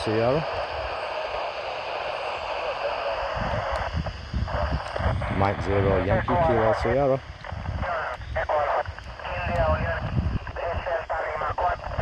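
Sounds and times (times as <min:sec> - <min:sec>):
radio receiver static hiss: 0:00.0 - 0:12.0.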